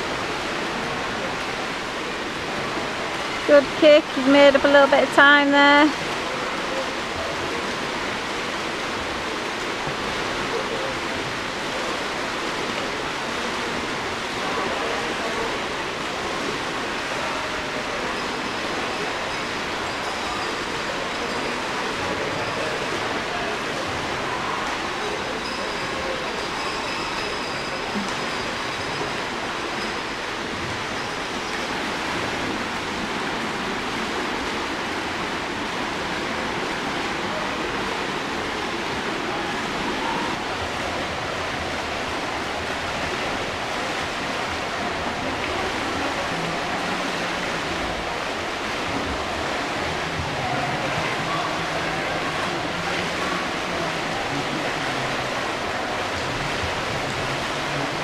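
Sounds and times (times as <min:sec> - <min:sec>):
swimmers splashing in echoing pool: 0:00.0 - 0:58.0.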